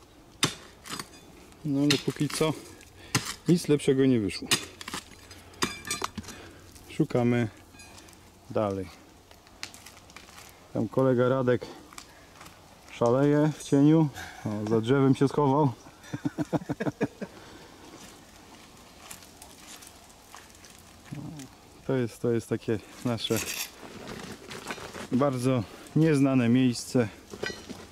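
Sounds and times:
stone clinking on stone: 0:05.6 - 0:06.2, 0:07.7 - 0:08.1, 0:27.4 - 0:27.8.

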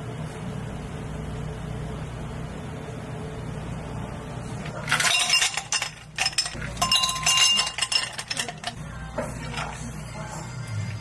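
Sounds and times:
ice cubes clinking in glass: 0:04.8 - 0:08.8, 0:09.4 - 0:09.9.

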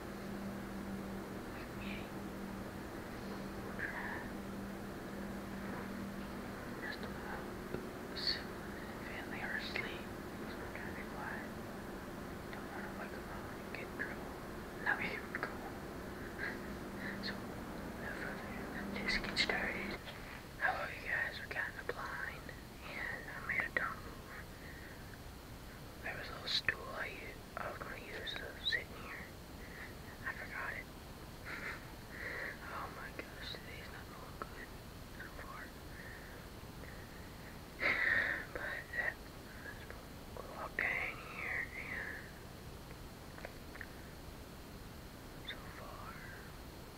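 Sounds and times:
faint low hum: 0:00.0 - 0:46.9
man whispering: 0:01.4 - 0:02.2, 0:03.2 - 0:04.4, 0:06.8 - 0:11.6, 0:12.5 - 0:24.5, 0:26.0 - 0:30.9, 0:32.4 - 0:36.2, 0:38.4 - 0:42.3, 0:45.4 - 0:46.5.

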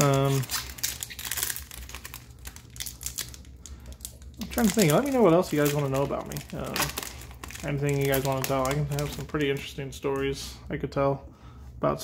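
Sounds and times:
foil wrapper crinkling: 0:00.0 - 0:10.3.

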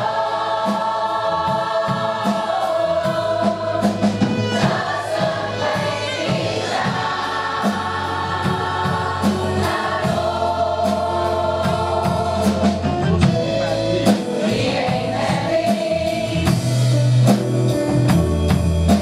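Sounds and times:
choir singing: 0:00.0 - 0:13.0, 0:14.0 - 0:17.1
accompaniment with steady beat: 0:00.0 - 0:19.0.

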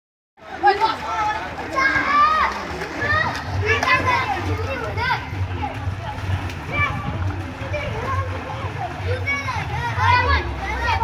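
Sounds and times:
children shouting: 0:00.6 - 0:05.8, 0:06.6 - 0:11.0.

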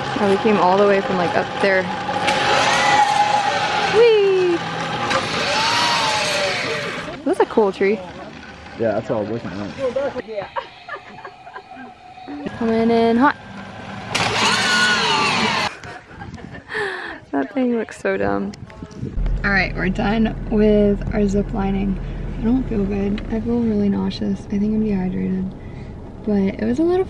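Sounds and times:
zipline pulleys whirring on cable: 0:00.0 - 0:15.8
zip line trolley whine: 0:00.0 - 0:15.9.

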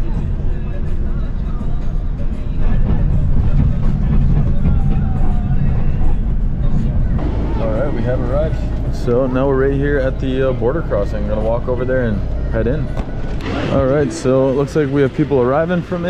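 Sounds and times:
bus engine and road rumble: 0:00.0 - 0:16.0
faint music: 0:00.0 - 0:16.0
indistinct voices: 0:00.0 - 0:16.0.

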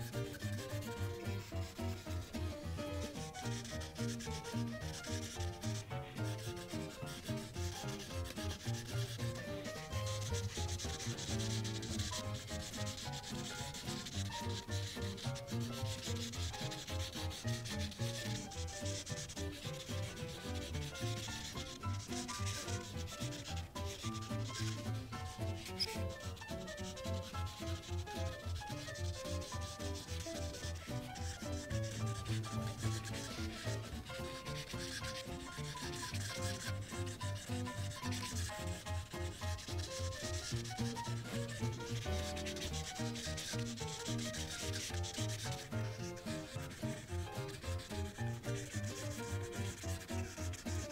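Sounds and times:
marker rubbing across paper: 0:00.0 - 0:50.9.

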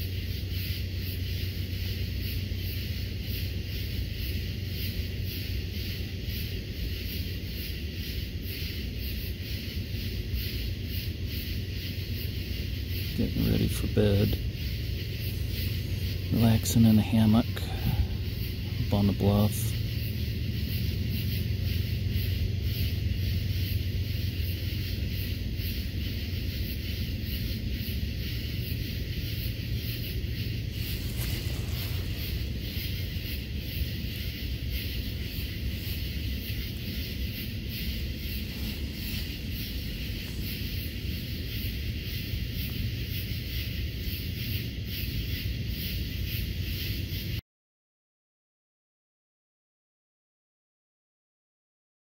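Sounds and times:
insect chorus pulsing: 0:00.0 - 0:47.4
wind rumbling on microphone: 0:00.0 - 0:47.4.

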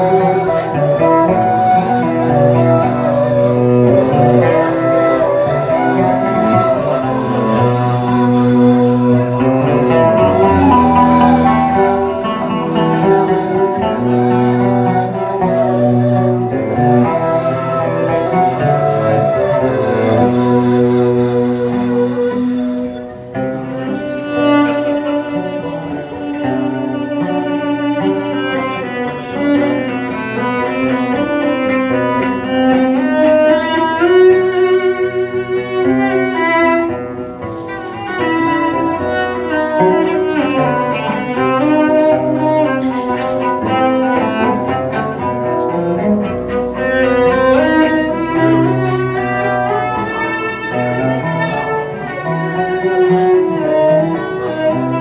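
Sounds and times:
bowed cello: 0:00.0 - 0:55.0
oud: 0:00.0 - 0:55.0
wooden flute: 0:00.0 - 0:55.0.

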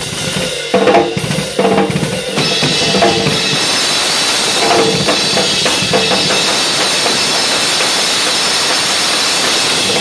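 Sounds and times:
cymbals ringing: 0:01.1 - 0:10.0.

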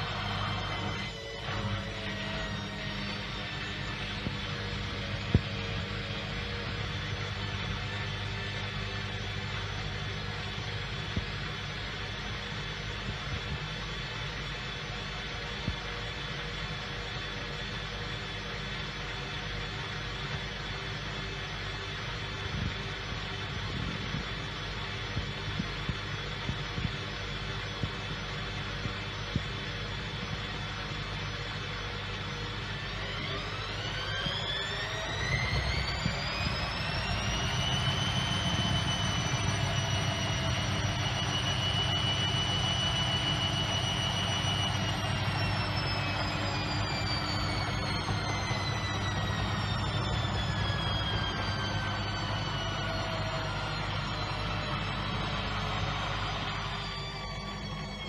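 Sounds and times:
low hum: 0:00.0 - 0:58.0
washing machine motor whine: 0:00.0 - 0:58.0.

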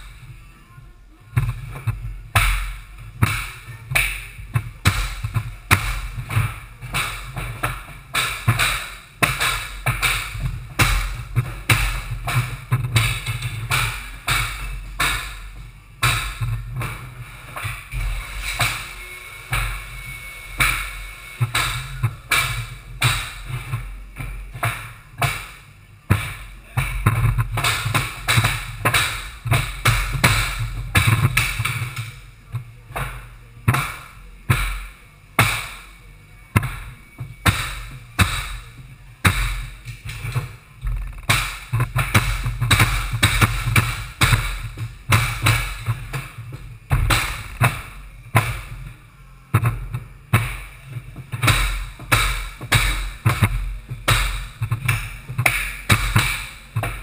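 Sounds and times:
low hum: 0:00.0 - 0:57.0
flooring nailer thumps: 0:36.6 - 0:48.8, 0:49.5 - 0:57.0.

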